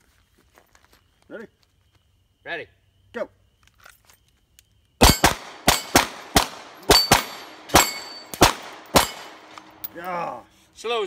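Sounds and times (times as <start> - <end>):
pistol shots: 5.0 - 9.9
steel plates ringing: 6.8 - 10.2.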